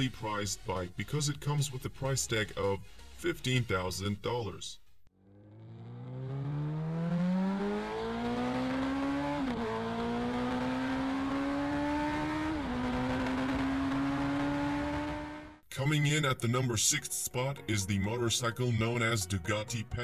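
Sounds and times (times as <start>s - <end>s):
motorcycle engine accelerating: 5.1s - 15.6s.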